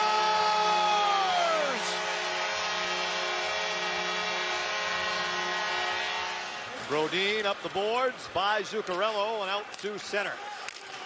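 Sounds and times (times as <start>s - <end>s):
crowd cheering: 0.0s - 11.0s
arena goal horn: 0.3s - 7.0s.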